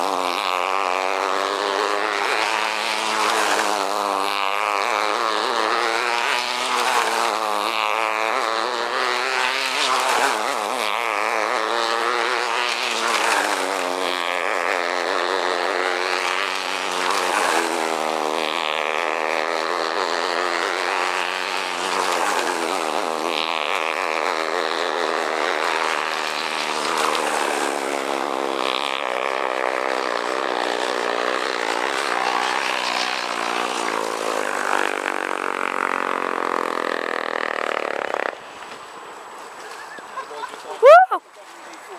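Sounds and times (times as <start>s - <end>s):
model hydroplane engine: 0.0s - 41.9s.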